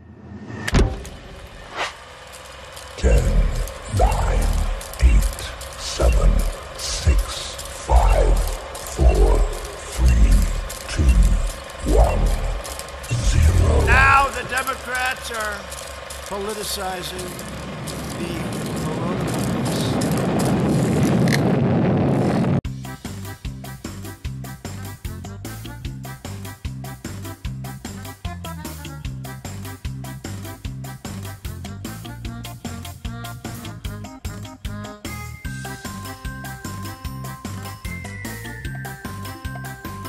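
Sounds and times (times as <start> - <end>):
loud low rumble: 3.0 - 14.8.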